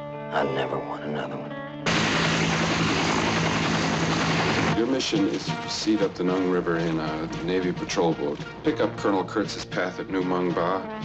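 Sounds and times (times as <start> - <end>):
helicopter turbine and rotor: 1.9 - 4.8
man's voice: 4.7 - 11.0.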